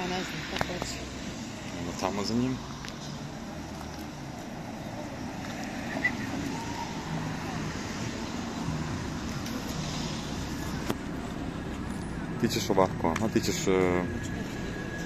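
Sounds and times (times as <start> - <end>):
outdoor noise: 0.0 - 15.0.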